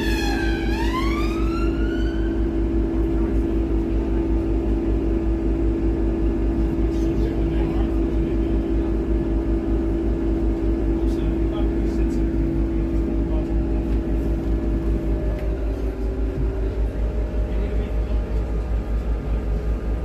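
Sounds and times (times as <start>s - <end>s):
emergency vehicle siren: 0.0s - 2.8s
bus engine droning: 0.0s - 20.0s.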